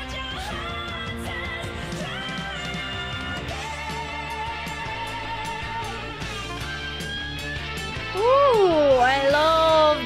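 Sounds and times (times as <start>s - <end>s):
live rock music with electric guitar: 0.0s - 10.0s.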